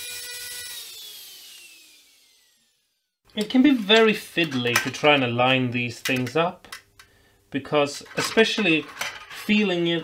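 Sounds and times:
router whine winding down: 0:00.0 - 0:03.0.

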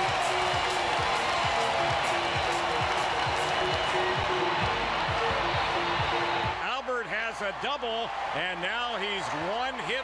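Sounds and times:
stadium music with thumping beat: 0:00.0 - 0:08.4
ballpark crowd noise: 0:00.0 - 0:10.0
man commentating: 0:06.6 - 0:10.0.

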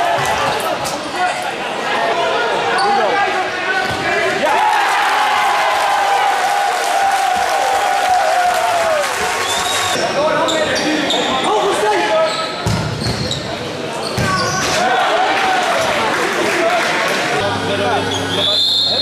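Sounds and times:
players shouting: 0:00.0 - 0:10.2.

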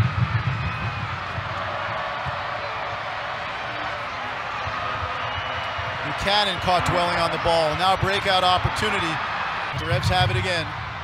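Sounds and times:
stadium crowd voices: 0:00.0 - 0:11.0.

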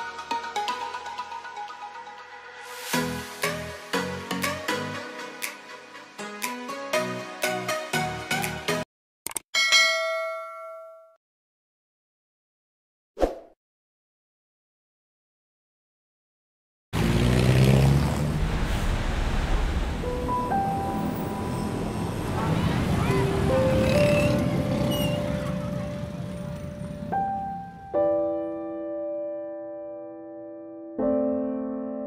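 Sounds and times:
bell-like ding: 0:09.6 - 0:11.2
cars passing with low rumble: 0:17.0 - 0:27.9.

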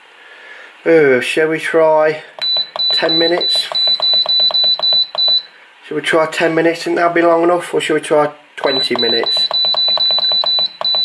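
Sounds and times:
oven control panel beeping: 0:02.4 - 0:05.5, 0:08.6 - 0:11.0.

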